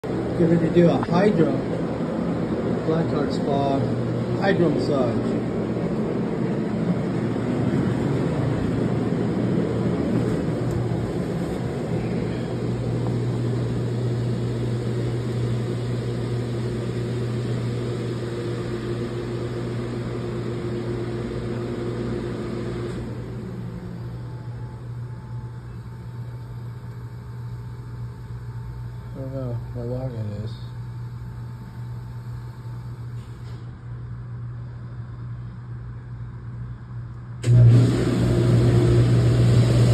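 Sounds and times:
low machine hum: 0.0 - 39.9.

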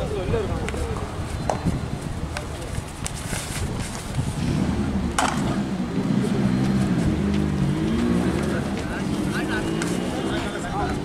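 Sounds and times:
voices calling out: 4.9 - 11.0.

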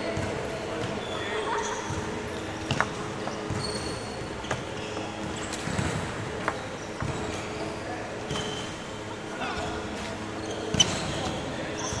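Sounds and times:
shoes thudding and squeaking on wood: 2.7 - 8.8, 9.6 - 12.0.

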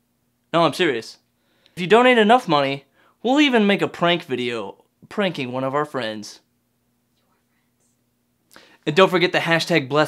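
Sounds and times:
faint steady hum: 0.0 - 10.0
man speaking: 0.5 - 1.2, 1.8 - 6.5, 8.8 - 10.0
short breath: 1.4 - 1.8, 2.9 - 3.2, 8.5 - 8.8.

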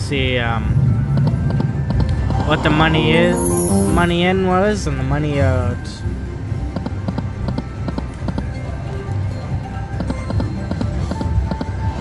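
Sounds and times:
low steady rumble: 0.0 - 5.4
slot machine music: 0.7 - 6.2.

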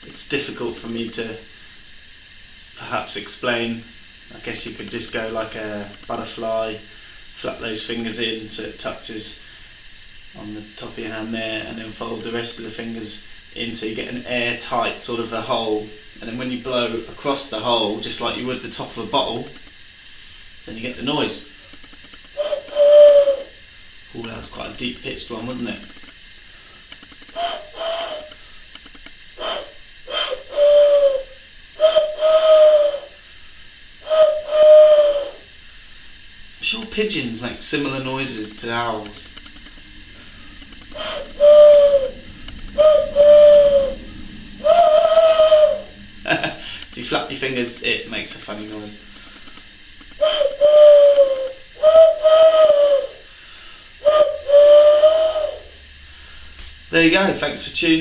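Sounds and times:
hand-blown owl hoots: 21.6 - 24.0, 27.0 - 35.6, 38.9 - 47.4, 49.0 - 56.0.

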